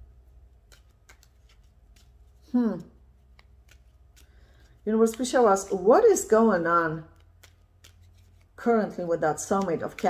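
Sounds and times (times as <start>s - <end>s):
cards sliding together: 0.5s - 2.5s, 3.1s - 5.9s, 7.1s - 8.6s
faint card clicks: 0.6s - 2.1s, 2.8s - 5.4s.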